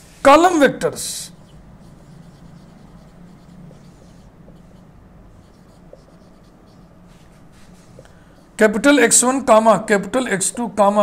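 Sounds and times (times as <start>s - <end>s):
marker scratching on whiteboard: 0.0s - 9.2s
low room hum: 0.0s - 11.0s.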